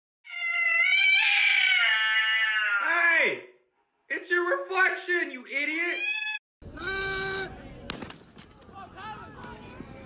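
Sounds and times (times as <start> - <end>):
cat yowling: 0.2 - 2.9, 6.0 - 6.4.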